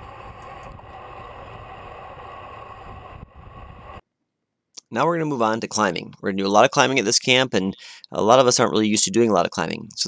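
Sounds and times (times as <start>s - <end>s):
road noise: 0.0s - 4.0s
wind rush over microphone: 0.0s - 4.0s.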